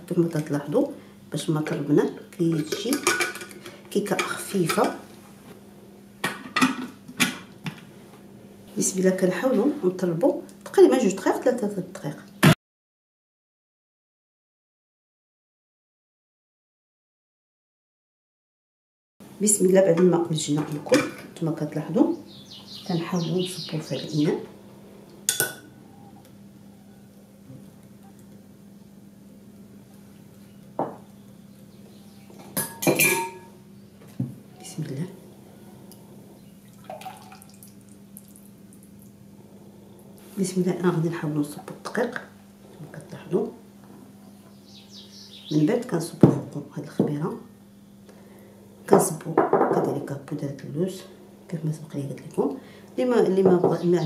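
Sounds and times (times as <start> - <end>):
dishes clinking: 2.5 - 5.0, 32.4 - 33.5.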